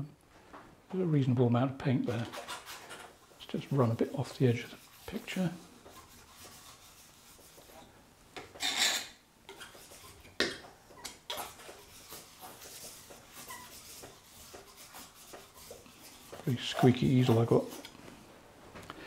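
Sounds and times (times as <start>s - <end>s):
palette knife scraping paint on canvas: 2.1s - 7.9s, 9.5s - 18.0s.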